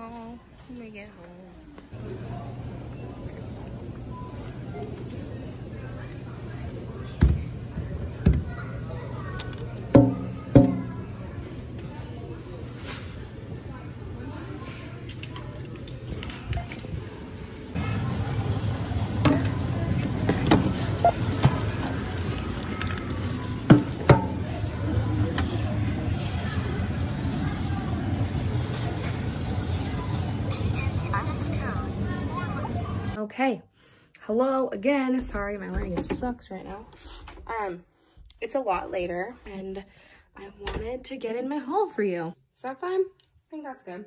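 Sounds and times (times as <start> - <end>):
clicks and knocks of items handled: 15.0 - 17.0, 20.3 - 24.3.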